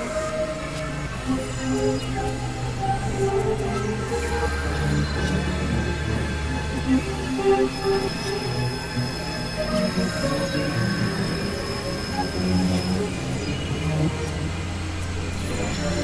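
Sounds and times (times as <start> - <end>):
electronic drone music: 0.0 - 16.0.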